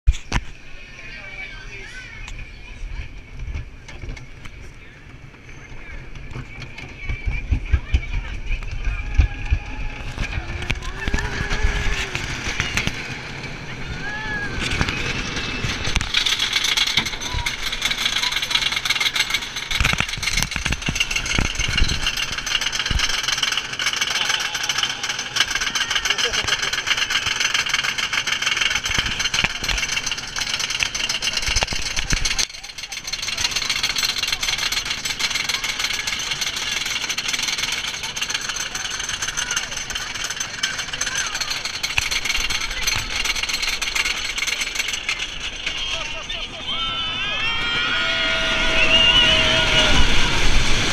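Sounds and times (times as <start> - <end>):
roller coaster wheels rattling: 0.1 - 50.9
riders shouting and screaming: 5.2 - 50.9.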